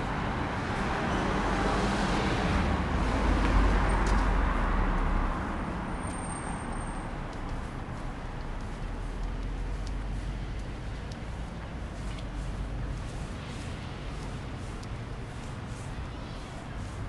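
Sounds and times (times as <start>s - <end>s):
car passing by: 0.0s - 7.9s
city street traffic: 0.0s - 17.0s.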